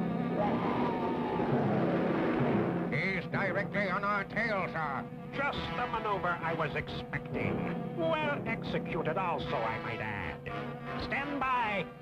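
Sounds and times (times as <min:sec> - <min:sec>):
dramatic background music: 0:00.0 - 0:12.0
cartoon rocket engine rush: 0:00.3 - 0:02.9.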